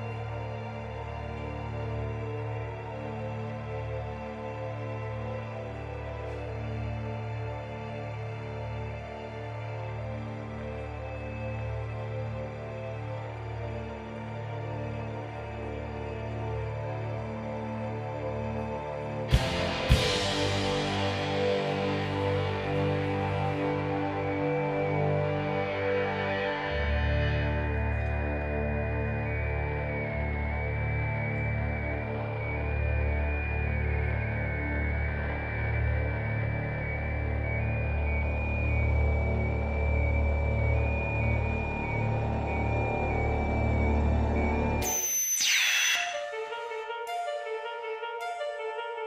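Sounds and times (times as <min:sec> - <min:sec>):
synthesizer chords: 0:44.6 - 0:49.0
falling whistling sweep: 0:44.8 - 0:46.9.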